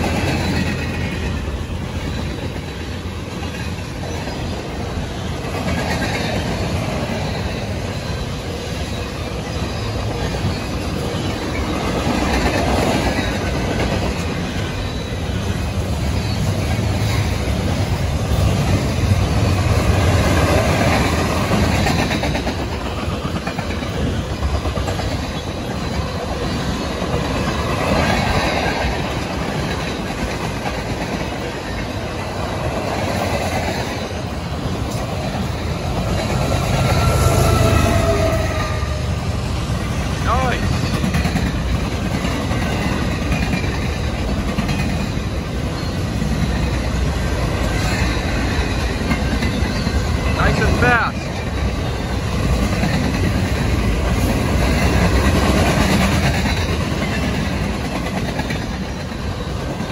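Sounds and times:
diesel locomotive engine rumble: 0:00.0 - 0:59.9
train wheels rumbling on rails: 0:00.0 - 0:59.9.

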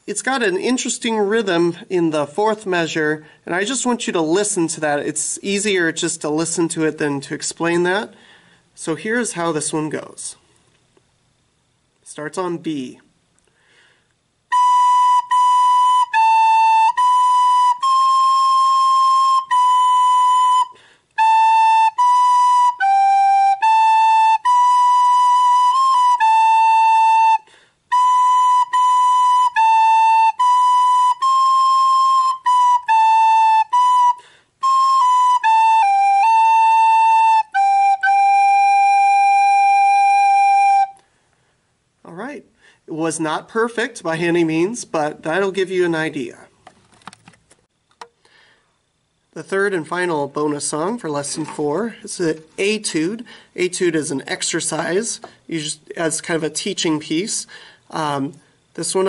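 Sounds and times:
recorder playing slow melody: 0:14.5 - 0:41.0.

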